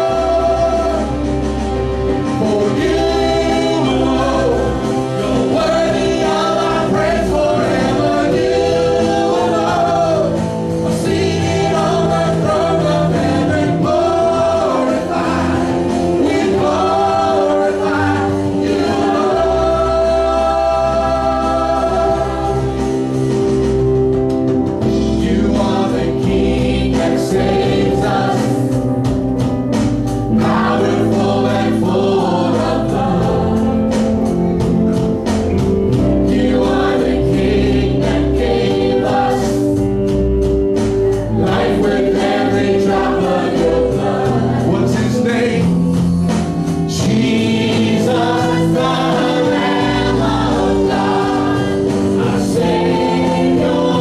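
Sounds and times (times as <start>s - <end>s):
drums: 0.0s - 54.0s
guitar: 0.0s - 54.0s
keyboard: 0.0s - 54.0s
people singing: 0.0s - 54.0s.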